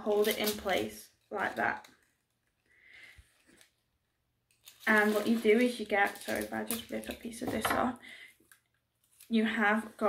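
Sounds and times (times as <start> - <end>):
faint handling rustle: 4.5 - 7.2.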